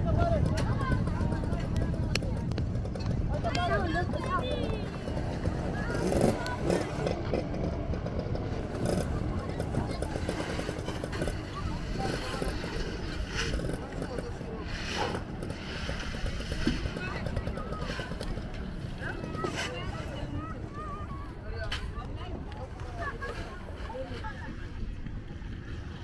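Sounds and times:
people's voices: 0.0s - 26.0s.

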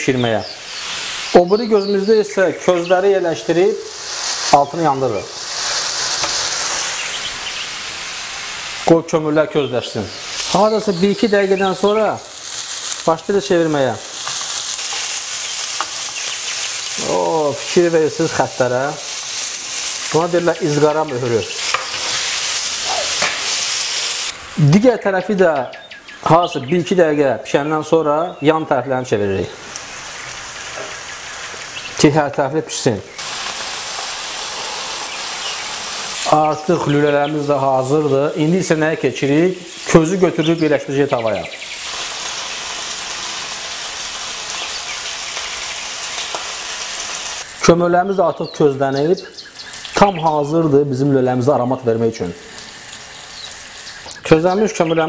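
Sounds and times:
meat sizzling in a pan: 0.1s - 25.0s, 29.5s - 48.2s, 49.4s - 51.5s, 52.2s - 54.9s.

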